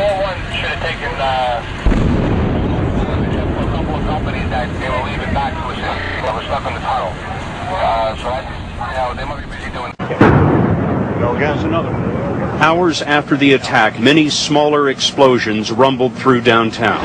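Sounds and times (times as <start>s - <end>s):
people's voices: 0.0s - 10.4s, 11.1s - 17.0s.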